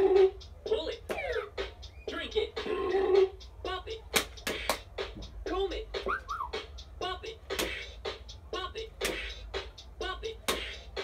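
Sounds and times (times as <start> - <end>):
electronic drum beat: 0.0 - 11.0
toy voice command: 0.6 - 1.4.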